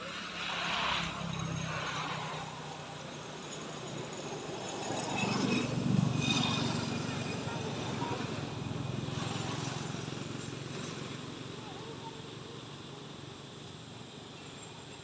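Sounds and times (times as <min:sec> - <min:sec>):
motor vehicle passing: 0:00.0 - 0:11.9.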